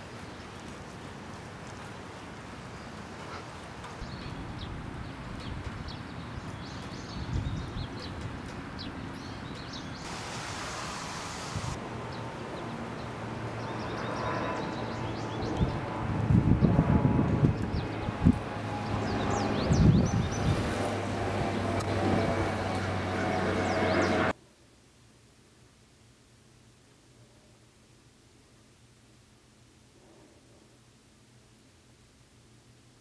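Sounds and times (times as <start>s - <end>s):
small birds chirping: 4.0s - 15.8s
wind buffeting microphone: 4.1s - 8.6s, 15.4s - 24.0s
low engine hum: 15.3s - 24.4s.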